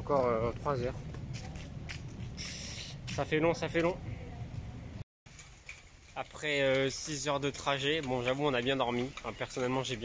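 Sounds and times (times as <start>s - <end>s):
faint outdoor background noise: 0.0s - 10.0s
street noise with low rumble: 0.0s - 10.0s.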